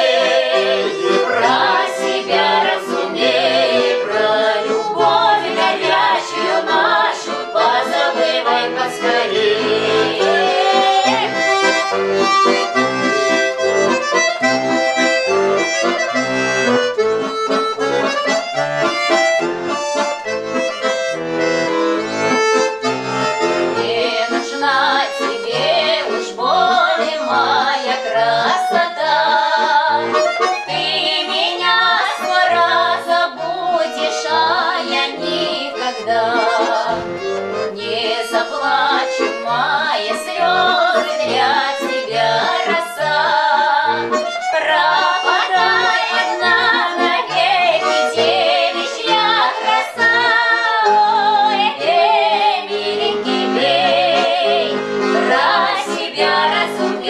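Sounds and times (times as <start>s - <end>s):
accordion playing folk tune: 0.0s - 57.0s.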